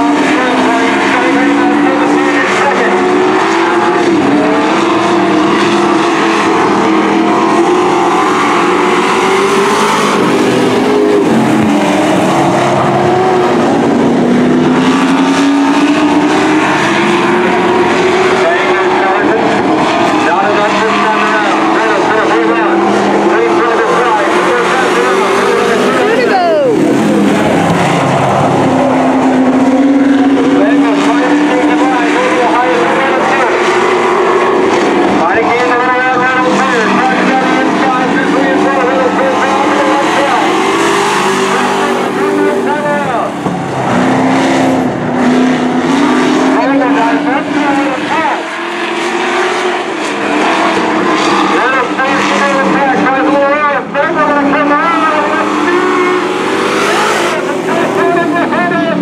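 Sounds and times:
race truck engines revving: 0.0 - 59.0.

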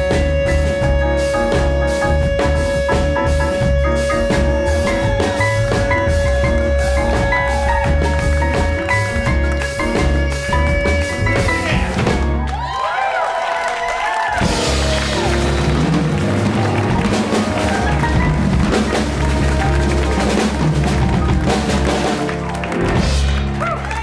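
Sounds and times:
upright bass: 0.0 - 12.7, 14.4 - 24.0
acoustic piano: 0.0 - 13.1, 14.2 - 24.0
drum kit: 0.0 - 24.0.

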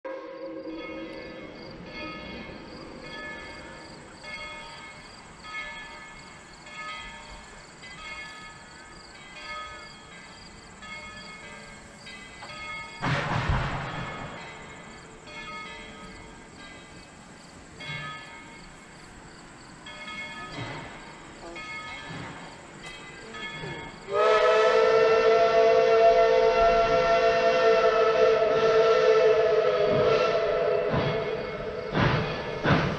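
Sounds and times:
locomotive bell ringing: 0.6 - 13.2, 13.8 - 17.2, 17.8 - 19.0, 19.8 - 24.3.

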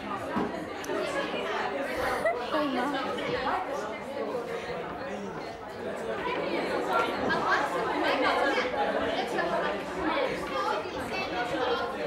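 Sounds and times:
students chattering: 0.0 - 12.0.

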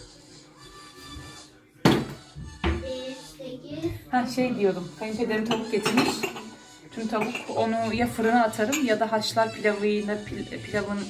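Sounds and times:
soft background music: 0.0 - 11.0
kitchenware knocking: 5.4 - 9.0.

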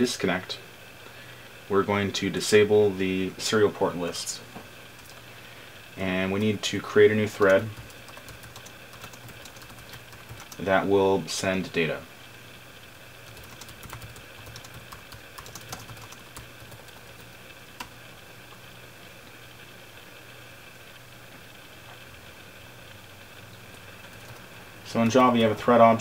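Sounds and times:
keyboard typing: 7.2 - 10.6, 13.2 - 17.9, 23.7 - 25.5.

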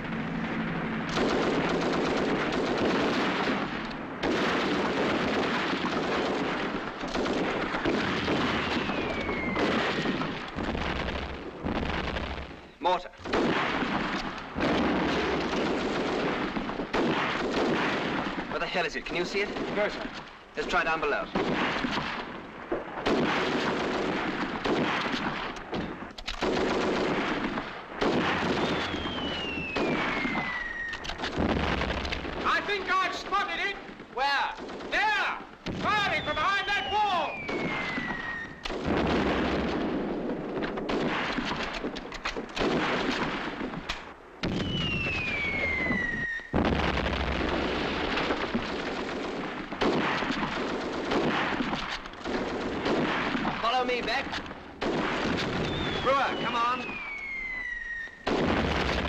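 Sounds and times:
rifle and machine-gun fire: 0.0 - 12.6, 13.2 - 59.0
shell explosions: 0.0 - 59.0
whistles of incoming shells: 8.4 - 10.3, 28.6 - 31.2, 36.0 - 38.7, 44.5 - 46.6, 55.5 - 58.3.

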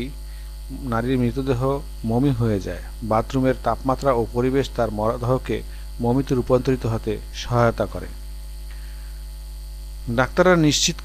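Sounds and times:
low electrical mains hum: 0.0 - 11.0.

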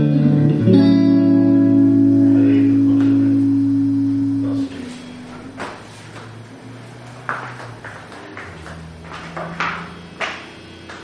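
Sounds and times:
electric guitar chord ringing: 0.0 - 5.6.

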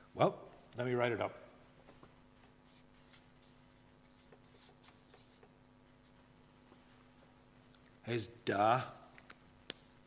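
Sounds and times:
faint steady hum: 0.0 - 10.0
writing strokes on a board: 2.7 - 6.2.

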